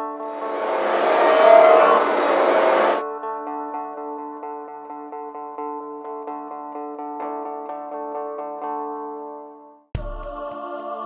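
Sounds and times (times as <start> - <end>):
rushing whoosh: 0.0 - 3.0.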